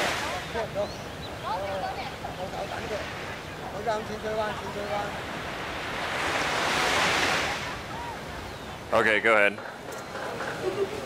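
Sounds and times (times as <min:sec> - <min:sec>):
surf washing onto beach: 0:00.0 - 0:11.0.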